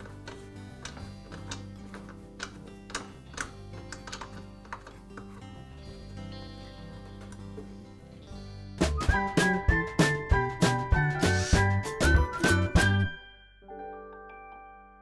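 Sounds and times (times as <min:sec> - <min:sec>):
metal clicks and taps: 0:00.0 - 0:05.4
soft background music: 0:00.0 - 0:15.0.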